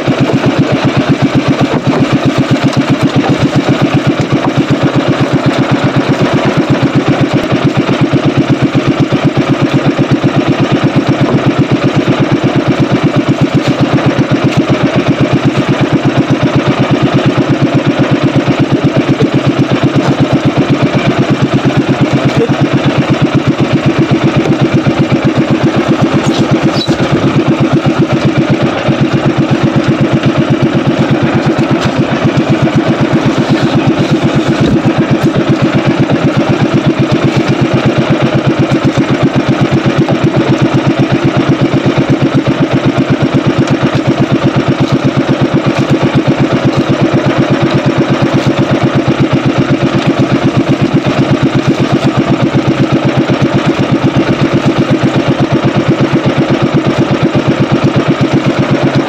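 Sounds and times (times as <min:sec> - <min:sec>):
small boat engine running: 0:00.0 - 0:59.0.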